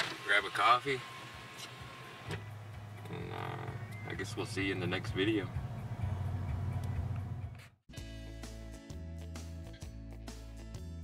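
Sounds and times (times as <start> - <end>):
low steady engine hum: 0.0 - 7.6.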